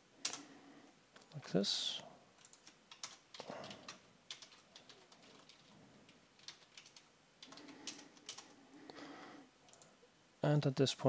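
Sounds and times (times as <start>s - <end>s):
typing on computer keyboard: 2.4s - 8.6s.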